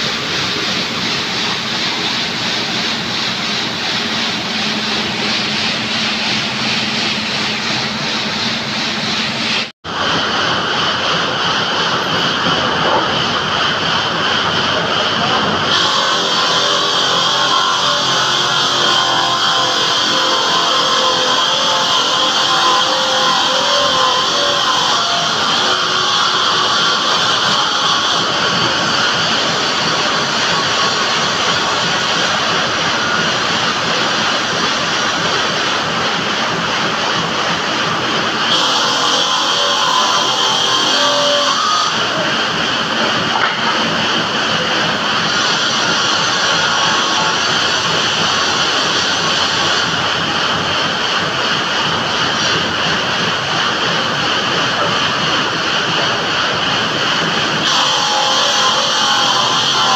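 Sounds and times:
steady high whine: 0:00.0 - 0:59.9
stone-cutting saw running: 0:00.0 - 0:59.9.

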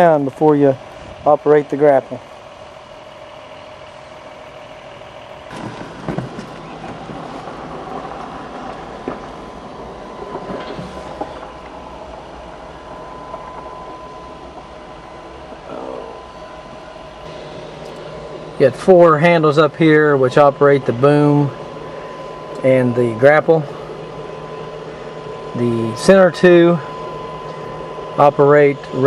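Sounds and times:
mechanical hum: 0:00.0 - 0:29.0.

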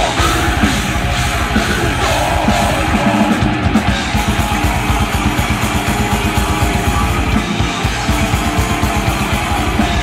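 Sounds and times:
distorted electric guitars: 0:00.0 - 0:10.0
fast driving drumming: 0:00.0 - 0:10.0.

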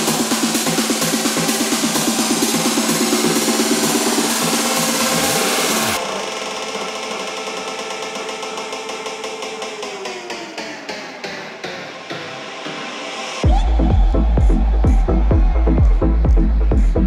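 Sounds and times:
electronic dance music: 0:00.0 - 0:17.0.

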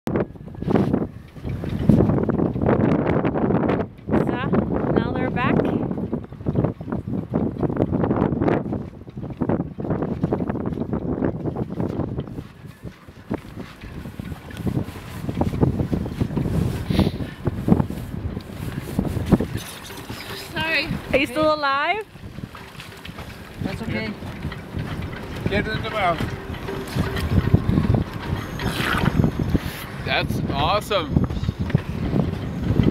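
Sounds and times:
wind buffeting the microphone: 0:00.1 - 0:32.9.

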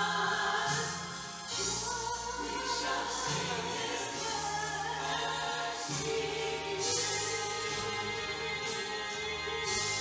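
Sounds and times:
woman singing a worship song: 0:00.0 - 0:10.0.

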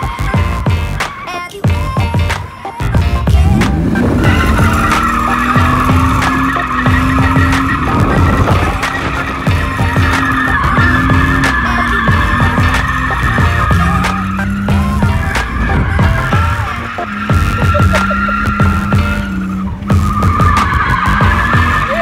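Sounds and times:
tyre squeal: 0:03.0 - 0:22.0
car engine at high revs: 0:03.1 - 0:22.0.

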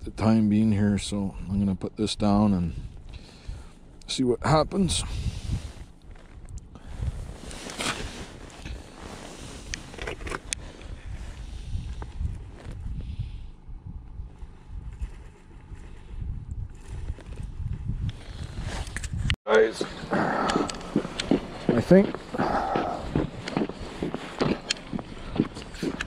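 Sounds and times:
wind buffeting microphone: 0:04.7 - 0:26.0
clothing rustling: 0:07.1 - 0:10.5.

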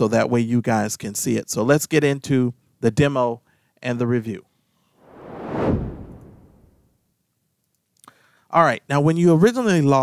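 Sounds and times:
whoosh sound effect: 0:05.0 - 0:06.9.

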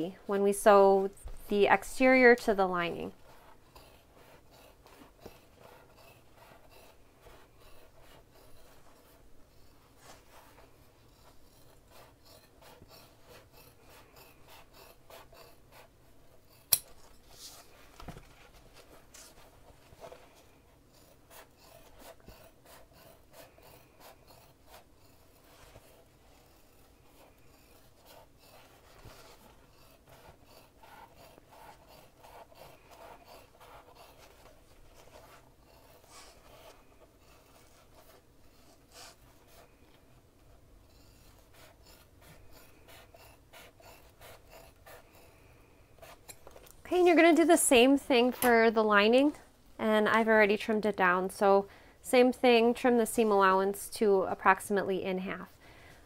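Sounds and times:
scissors snipping fabric: 0:11.5 - 0:17.2
fabric rubbing: 0:17.0 - 0:39.8.

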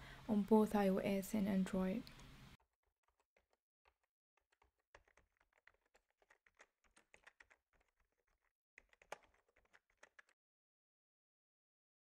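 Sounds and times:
rapid keyboard typing: 0:02.8 - 0:10.4.

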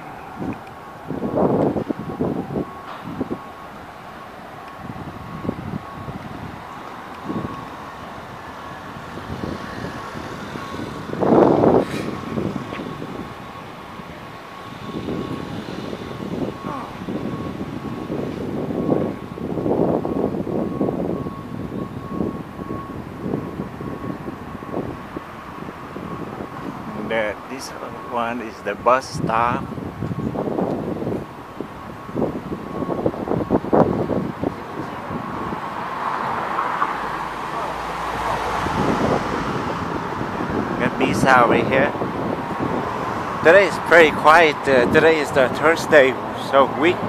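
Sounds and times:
faint steady high tone: 0:00.0 - 0:25.0, 0:25.6 - 0:35.2
city street traffic passing: 0:00.0 - 0:47.0.

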